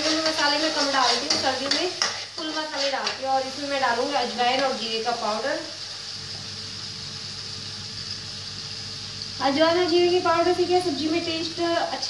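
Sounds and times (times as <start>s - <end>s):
masala sizzling in hot oil: 0.0s - 12.0s.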